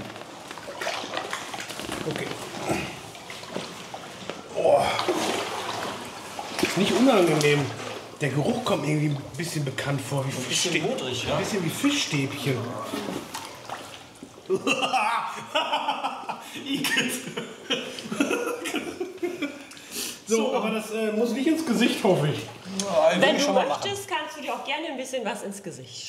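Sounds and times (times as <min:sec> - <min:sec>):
water sloshing: 0:00.0 - 0:14.8, 0:21.2 - 0:24.8
person speaking: 0:20.2 - 0:24.7.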